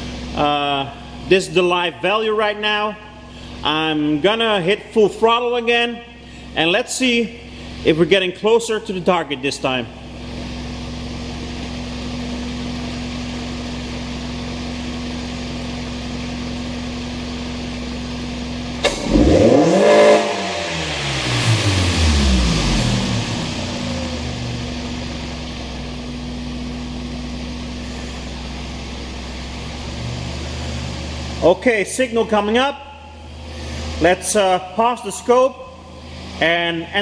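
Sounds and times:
car engine idling and revving: 0:00.0 - 0:37.0.

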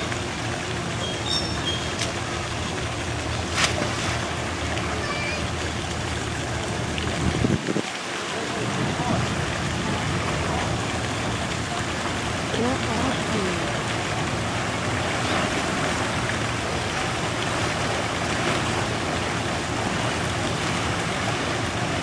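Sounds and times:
water splashing and churning: 0:00.0 - 0:22.0.

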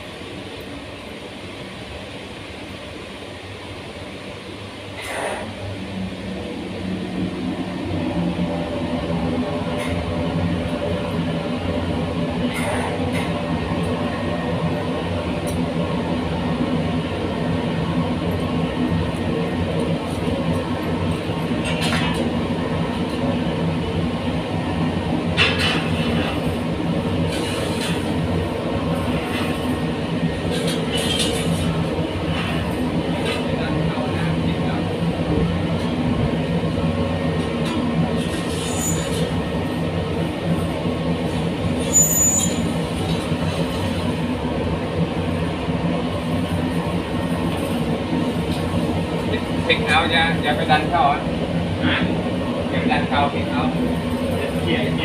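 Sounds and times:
furnace burner roaring: 0:00.0 - 0:55.0.

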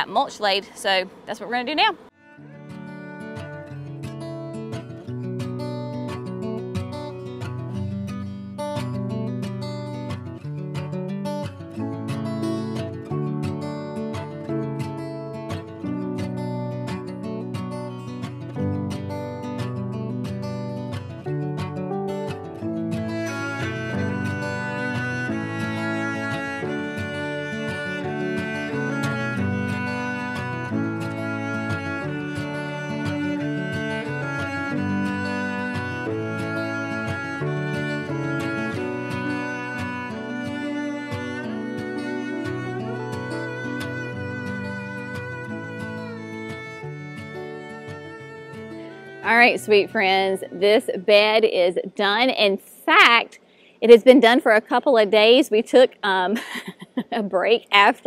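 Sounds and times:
instrumental background music: 0:01.7 - 0:52.4.

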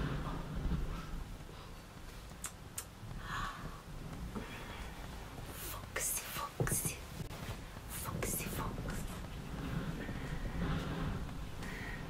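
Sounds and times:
woman whispering: 0:05.5 - 0:07.2, 0:07.8 - 0:09.2.

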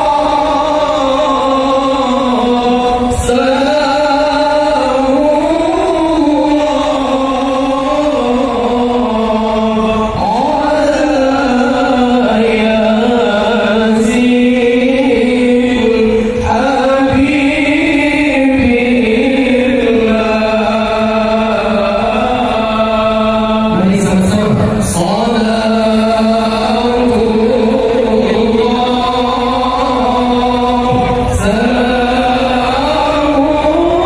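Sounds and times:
devotional chanting: 0:00.0 - 0:34.0.

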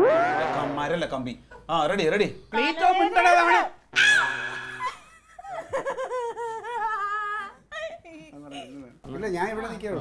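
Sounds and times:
woman laughing: 0:04.8 - 0:08.2.

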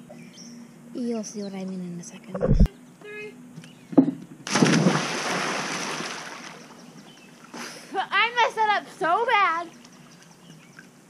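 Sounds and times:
person splashing into pool: 0:04.5 - 0:06.7.

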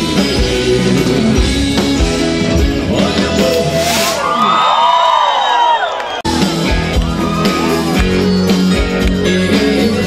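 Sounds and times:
concert crowd cheering and screaming: 0:03.0 - 0:09.2.

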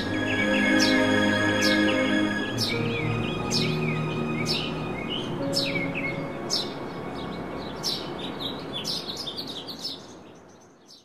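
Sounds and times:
soft background music: 0:00.0 - 0:09.5
small birds chirping: 0:00.0 - 0:11.0.

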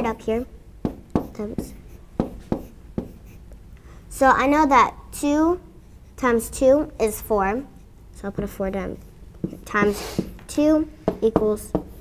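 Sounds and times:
stylus tapping on screen: 0:00.8 - 0:03.4, 0:09.4 - 0:12.0.

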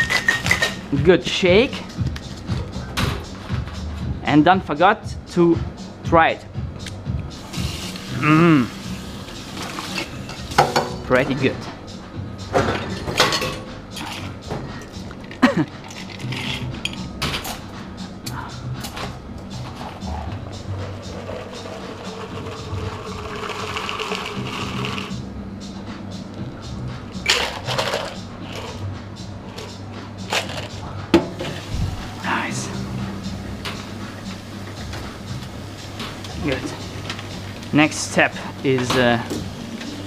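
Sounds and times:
shaker tin and glassware clinks: 0:00.0 - 0:00.8
background music: 0:00.0 - 0:40.0.

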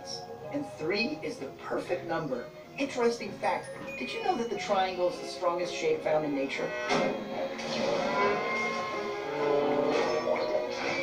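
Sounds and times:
cow mooing: 0:06.4 - 0:10.6
truck horn blaring: 0:06.5 - 0:07.3.

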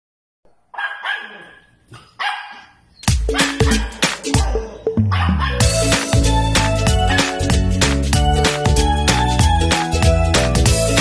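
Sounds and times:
dog barking: 0:00.5 - 0:05.6
music with heavy bass beat: 0:03.1 - 0:11.0.

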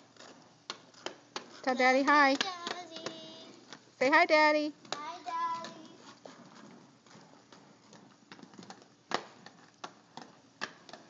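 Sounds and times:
inline skates rolling on concrete: 0:00.0 - 0:11.0
skate wheel clacks: 0:00.0 - 0:11.0.

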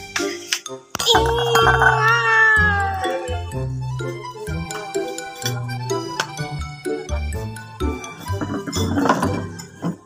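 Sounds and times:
cat meowing: 0:01.2 - 0:03.4.

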